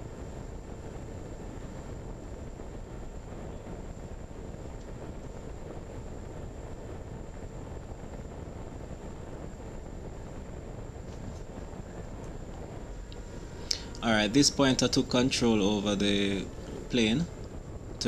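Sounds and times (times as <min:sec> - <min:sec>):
wind rushing over a plane: 0:00.0 - 0:18.0.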